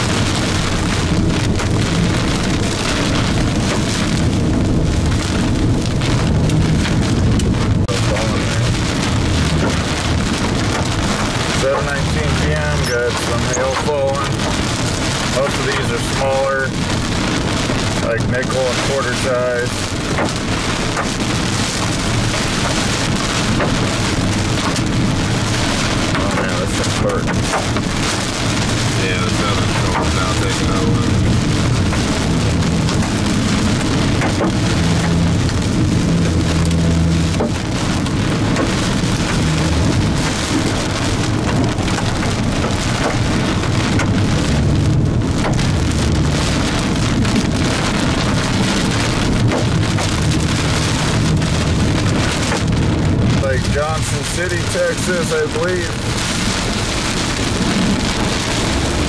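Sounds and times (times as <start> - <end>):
heavy rain on a car: 0.0 - 59.0
low rumble: 0.0 - 59.0.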